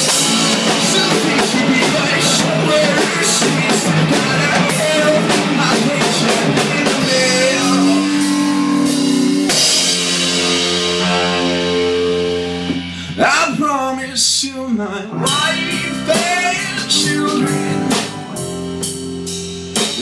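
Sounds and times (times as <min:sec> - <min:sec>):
rock band playing: 0:00.0 - 0:14.3, 0:14.9 - 0:20.0
guitar chord ringing out: 0:10.4 - 0:12.9.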